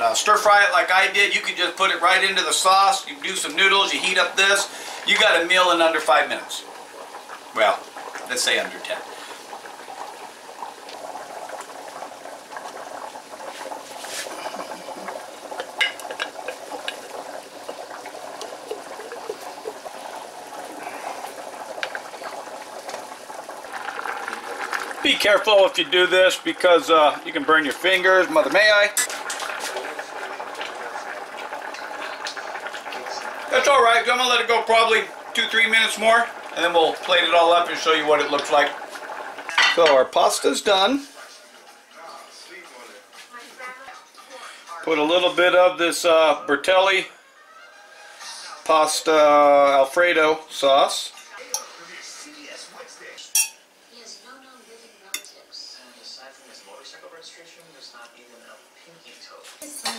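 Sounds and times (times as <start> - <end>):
water boiling and bubbling: 0.0 - 59.1
metal utensil scraping saucepan: 51.2 - 51.9, 53.4 - 53.6.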